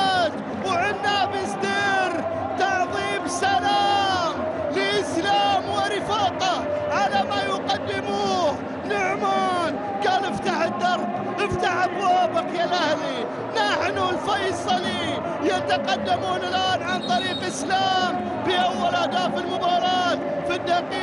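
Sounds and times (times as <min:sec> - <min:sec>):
stadium crowd noise: 0:00.0 - 0:21.0.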